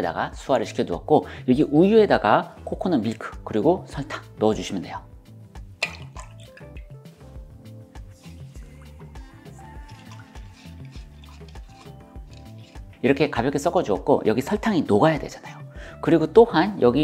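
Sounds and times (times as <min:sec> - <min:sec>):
background music with bass line: 0:00.0 - 0:17.0
liquid poured and stirred in jug: 0:05.6 - 0:14.2.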